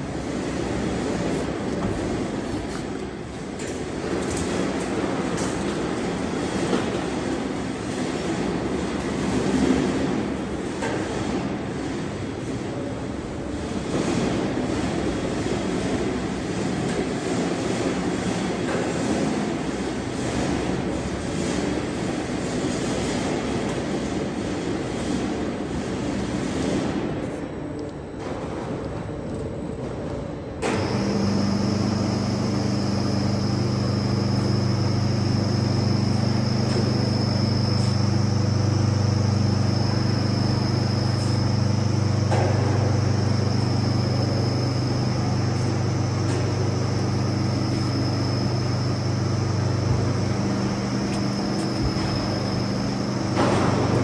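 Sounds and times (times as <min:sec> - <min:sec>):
electric hum with high whine: 0:00.0 - 0:54.0.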